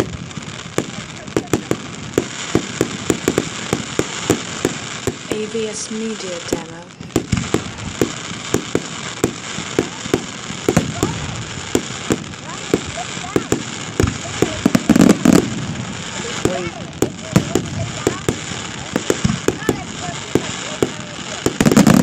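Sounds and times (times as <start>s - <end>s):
fireworks bangs: 0.0s - 22.0s.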